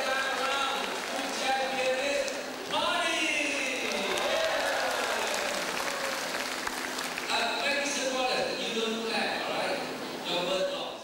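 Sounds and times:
audience applauding: 0.0 - 2.0, 3.7 - 7.5.

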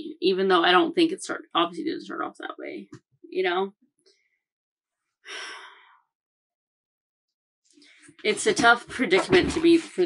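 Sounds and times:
woman sighing: 5.3 - 6.0.

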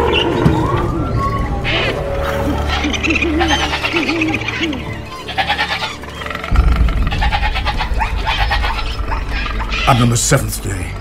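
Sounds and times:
animal calls: 0.0 - 11.0
film score with deep drone: 0.0 - 11.0.

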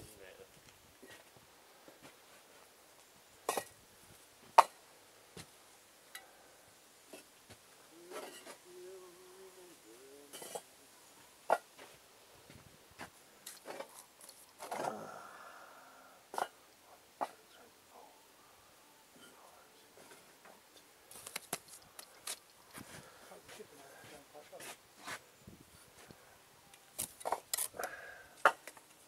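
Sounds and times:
knocks and clicks of bricks and tools: 11.5 - 11.9, 27.0 - 29.0.

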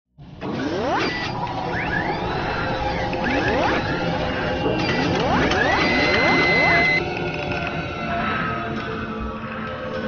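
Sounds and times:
mechanical whirring and clattering: 0.2 - 7.8.

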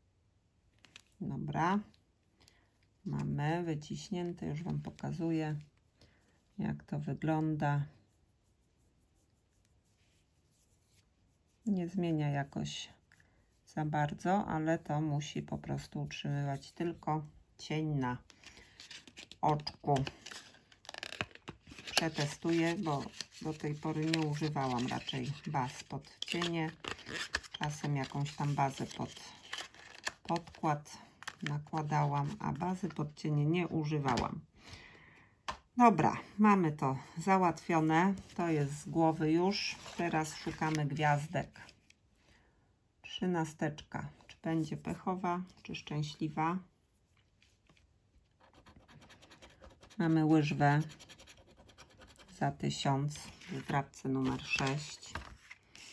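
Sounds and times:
paper packaging rustling: 18.4 - 32.4.

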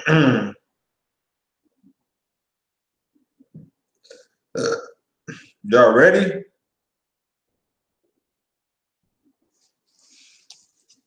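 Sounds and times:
man burping: 0.0 - 0.6, 4.1 - 5.6
faint mouth and throat sounds: 3.5 - 5.6.

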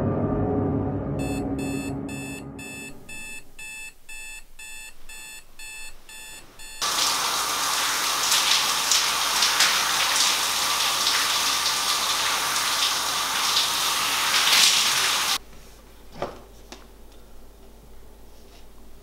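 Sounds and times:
electronic alarm clock beeping: 1.2 - 6.9
shower running: 6.8 - 15.4.

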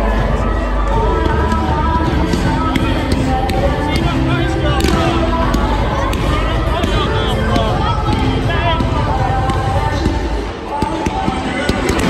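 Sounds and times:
background voices: 0.0 - 12.0
stadium crowd noise: 0.0 - 12.0.

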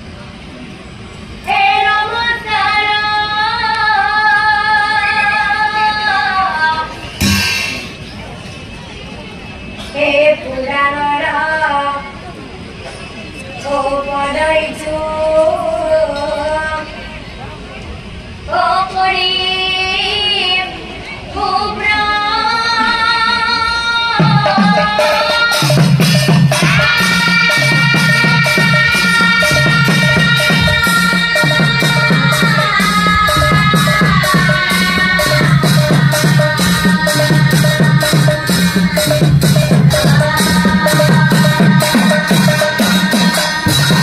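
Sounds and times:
woman singing devotional song: 1.5 - 7.0, 9.9 - 12.2, 13.6 - 17.2, 18.5 - 26.0, 26.6 - 44.0
drum beats: 7.2 - 8.1, 24.2 - 44.0.

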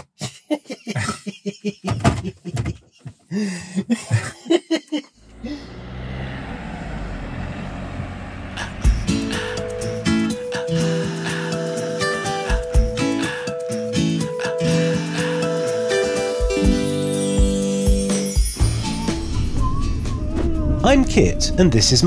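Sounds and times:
people laughing: 0.5 - 5.2
campervan engine and tyre noise: 5.1 - 13.4, 14.1 - 22.0
acoustic guitar music: 8.6 - 20.2.

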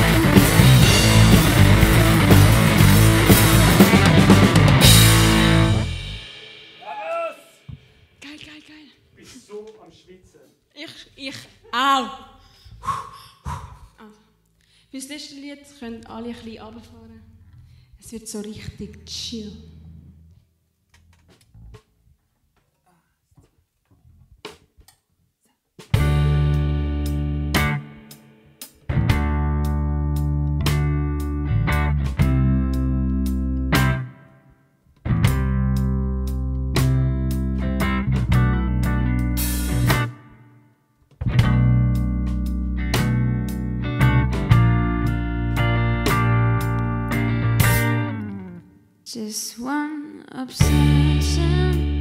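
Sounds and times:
live rock band playing: 0.0 - 6.8, 26.0 - 34.2, 35.1 - 40.4, 41.2 - 48.6, 50.6 - 52.0.

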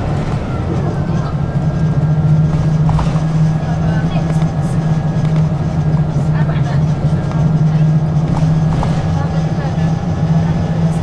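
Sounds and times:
bus engine hum: 0.0 - 11.0
road and tyre rumble: 0.0 - 11.0.

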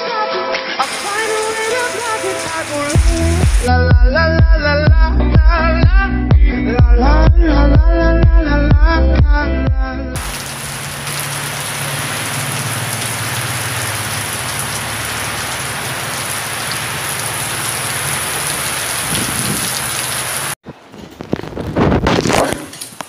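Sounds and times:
heavy rain pouring: 0.8 - 3.7, 10.2 - 20.6.

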